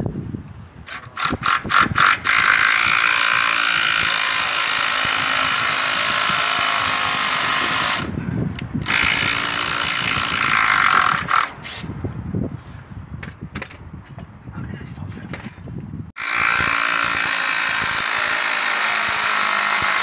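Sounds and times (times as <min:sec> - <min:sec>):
cordless drill drilling: 0:01.1 - 0:08.1, 0:08.8 - 0:11.5, 0:16.2 - 0:20.0.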